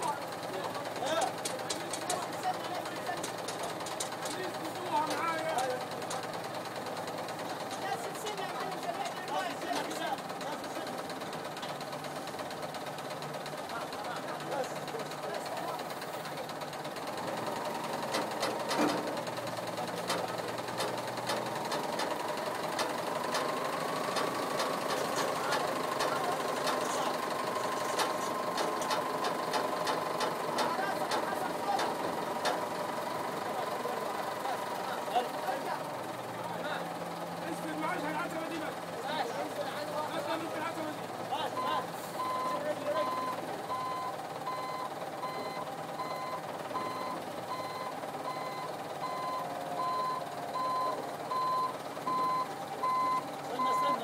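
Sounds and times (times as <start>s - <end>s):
diesel engine whining: 0.0s - 54.0s.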